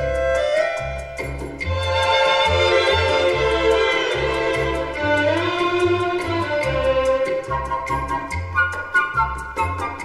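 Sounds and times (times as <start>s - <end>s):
bass line of repeated notes: 0.0s - 10.0s
strings playing smooth melody: 0.0s - 10.0s.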